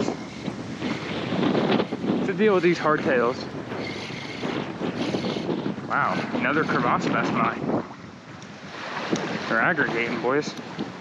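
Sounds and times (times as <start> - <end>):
water lapping at beach: 0.0 - 11.0
wind buffeting microphone: 0.0 - 11.0.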